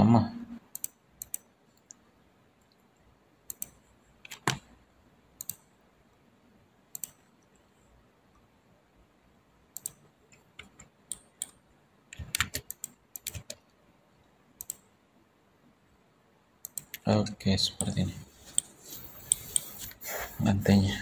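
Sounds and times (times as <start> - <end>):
computer mouse clicks: 0.7 - 2.0, 3.5 - 4.7, 5.4 - 5.7, 6.9 - 7.6, 9.7 - 13.8, 14.6 - 14.9, 16.6 - 17.0, 17.8 - 20.0
keyboard keystrokes: 10.6 - 13.6.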